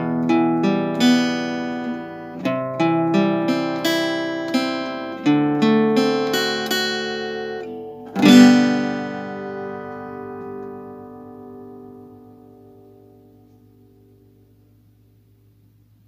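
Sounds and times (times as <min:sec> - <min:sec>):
strummed guitar chord: 0:00.0 - 0:14.8
acoustic guitar picking: 0:00.0 - 0:15.3.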